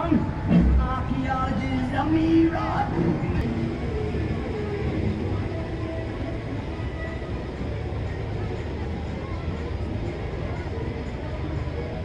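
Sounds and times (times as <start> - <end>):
crowd chatter: 0.0 - 12.0
minibus engine rumble: 0.0 - 12.0.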